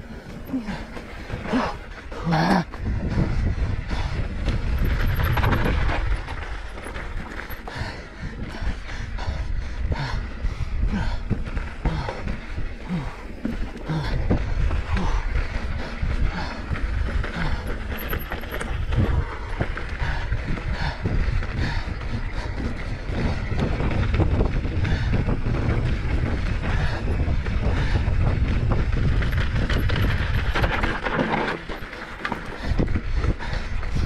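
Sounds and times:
bike knocks and rattles: 0.0s - 8.6s, 10.9s - 34.0s
bike tyre noise on gravel: 0.0s - 34.0s
wind rush on microphone: 0.0s - 34.0s.

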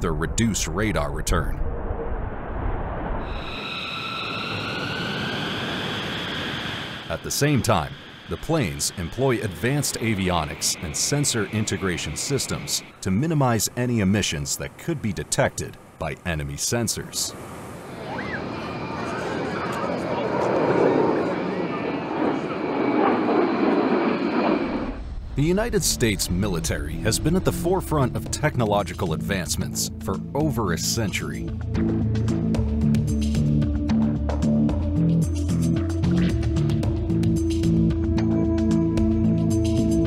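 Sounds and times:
jet bomber passing low: 1.2s - 15.0s, 17.3s - 29.0s.

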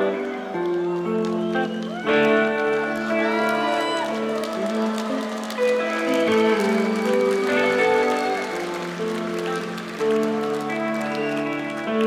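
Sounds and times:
electric guitar notes: 0.0s - 12.0s
rock band playing instrumental: 0.0s - 12.0s.

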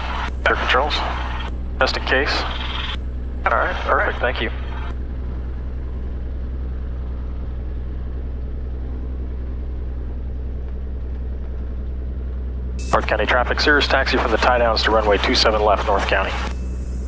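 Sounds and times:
aircraft piston engine droning: 0.0s - 17.0s.

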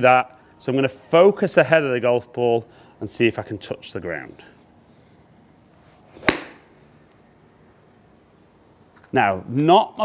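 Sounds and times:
golf club swish: 5.6s - 6.8s
golf club striking ball: 6.2s - 6.7s.

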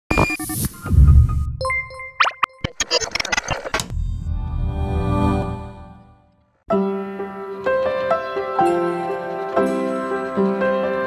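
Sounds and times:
glitchy clicks: 2.2s - 3.9s.

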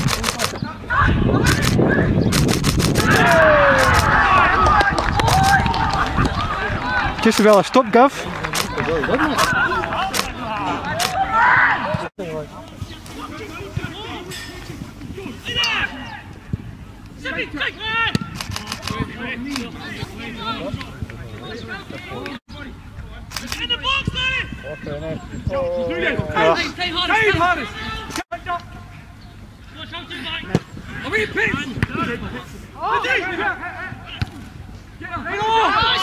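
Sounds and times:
sharp clicks: 0.0s - 0.6s, 1.4s - 4.2s, 4.9s - 6.0s, 7.2s - 7.8s, 8.5s - 8.8s, 9.4s - 10.4s, 18.3s - 19.7s, 23.3s - 23.7s
players shouting: 2.8s - 12.1s, 23.5s - 28.8s, 35.0s - 36.0s
men shouting: 3.0s - 8.0s.

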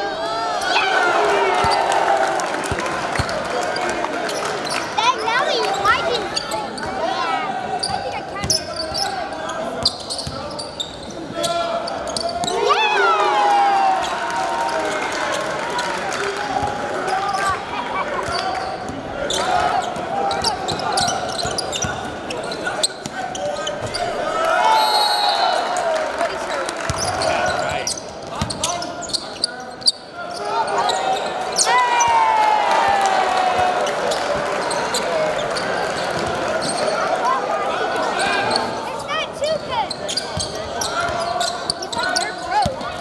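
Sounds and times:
crowd voices: 0.0s - 43.0s
sneaker squeaks: 4.3s - 7.1s, 7.7s - 12.7s, 18.2s - 24.2s, 26.9s - 32.1s, 34.2s - 37.1s, 38.0s - 43.0s
basketball bouncing on court: 19.9s - 22.2s, 28.2s - 28.7s, 42.6s - 43.0s.

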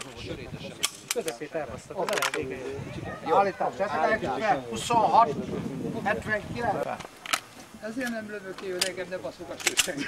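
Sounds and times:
men talking: 0.0s - 10.0s
pistol cracks: 0.8s - 1.4s.

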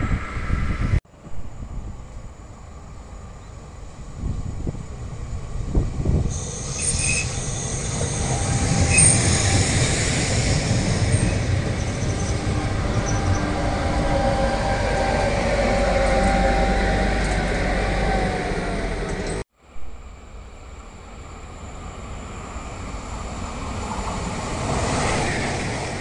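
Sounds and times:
train wheels rumbling on rail: 1.7s - 19.4s
high-pitched wheel squeals: 6.3s - 19.4s.

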